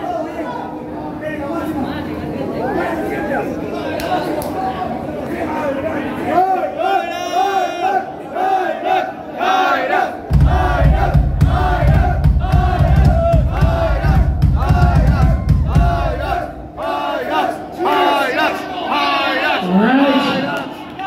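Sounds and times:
crowd chanting and shouting: 0:02.6 - 0:21.0.

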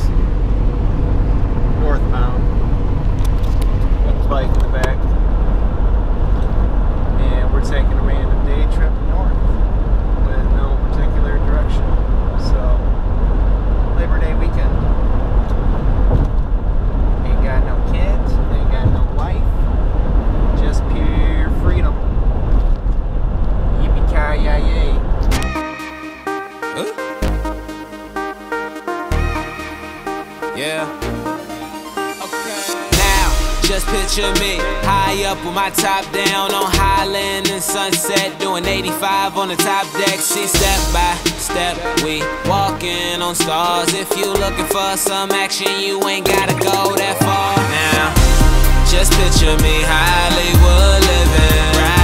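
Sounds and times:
car road and engine rumble: 0:00.0 - 0:25.4, 0:32.9 - 0:45.3
music: 0:25.3 - 0:52.0.

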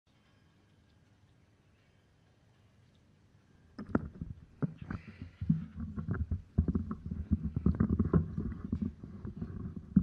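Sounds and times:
microphone rumbling and bumping: 0:03.8 - 0:10.0.

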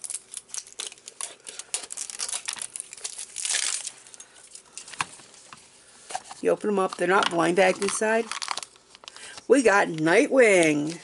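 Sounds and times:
plastic wrap tearing and crinkling: 0:00.0 - 0:04.6, 0:07.7 - 0:09.2.

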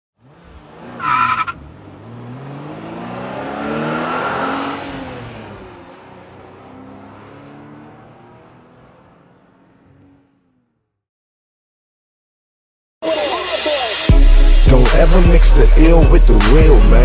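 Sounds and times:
car engine revving: 0:00.2 - 0:10.8
tyre screech: 0:00.9 - 0:01.6.

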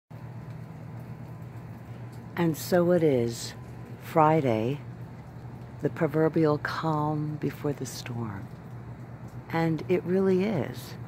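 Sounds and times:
low hum: 0:00.1 - 0:11.0.

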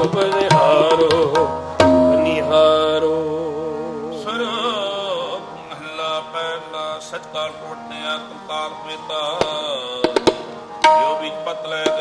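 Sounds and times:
tabla stroke: 0:00.0 - 0:03.0, 0:09.4 - 0:12.0
devotional singing: 0:00.0 - 0:12.0
harmonium sustained chords: 0:00.7 - 0:12.0.

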